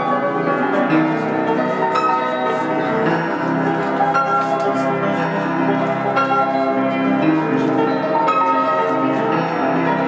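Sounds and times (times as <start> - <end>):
grand piano chords: 0.0 - 10.0.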